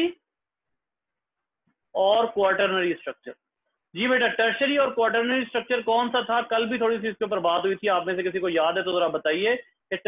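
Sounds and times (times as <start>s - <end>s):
man speaking: 2.0s - 10.0s.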